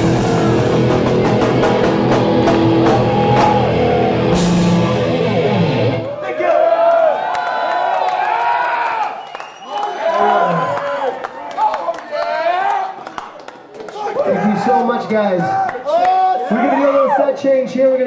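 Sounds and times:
heavy metal band playing: 0.0s - 6.2s
crowd cheering and whistling: 0.0s - 11.8s.

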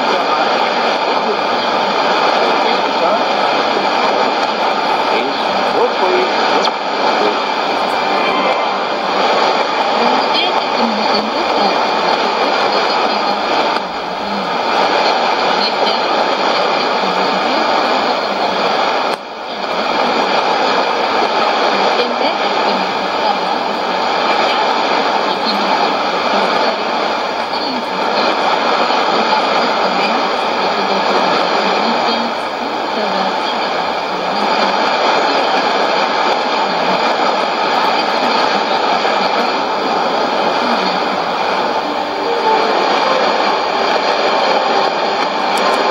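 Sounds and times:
radio static and hiss: 0.0s - 45.9s
weak radio voice: 0.0s - 45.9s.

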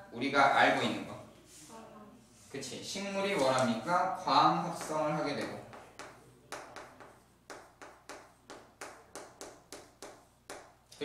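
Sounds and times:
chalk tapping on chalkboard: 4.6s - 10.8s.

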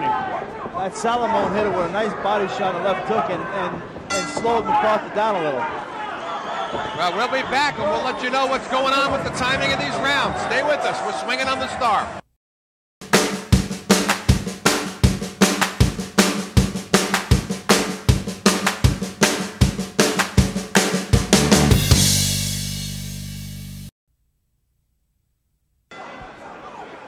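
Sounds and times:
fast drum-kit beat: 13.0s - 23.7s.

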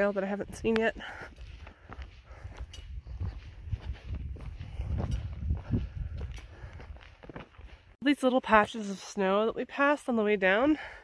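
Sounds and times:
footsteps on dirt trail: 0.0s - 11.0s.

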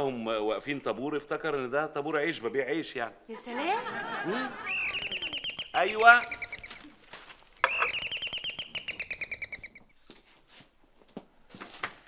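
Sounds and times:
electronic doorbell trill: 7.7s - 9.8s.

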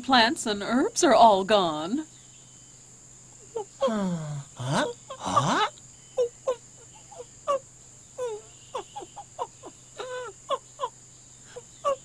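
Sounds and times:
baby monkey squeaky chirps: 8.2s - 10.9s.

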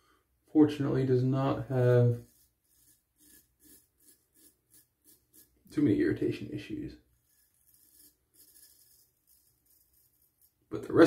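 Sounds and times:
razor scraping stubble: 1.8s - 5.8s, 7.2s - 10.7s.

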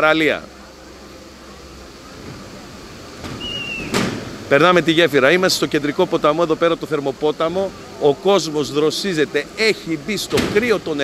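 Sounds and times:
river rushing over stones: 0.0s - 11.0s.

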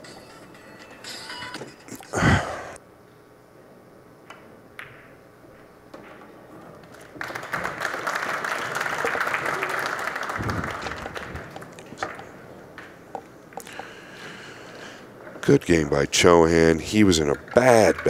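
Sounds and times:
pool balls clicking: 4.2s - 18.0s
audience applause: 7.0s - 12.0s.

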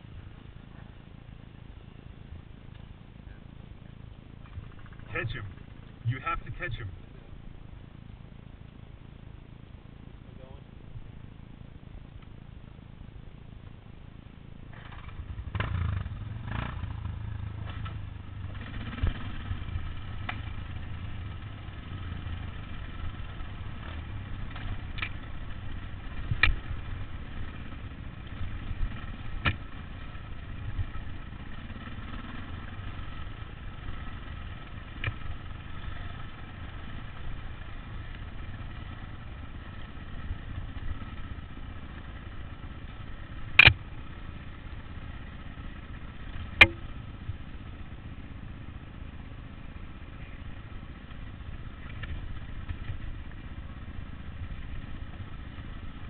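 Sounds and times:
dirt bike engine running: 0.0s - 56.0s
sharp knocks: 46.6s - 46.9s.

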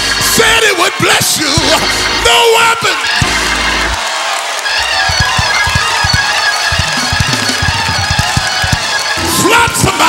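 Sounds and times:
keyboard or organ chords: 0.0s - 10.0s
drum hits: 3.1s - 4.0s, 4.8s - 9.4s.

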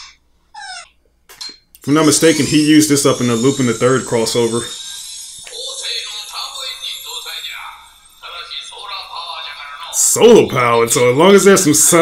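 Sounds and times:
cartoon character dialogue: 5.5s - 7.0s.

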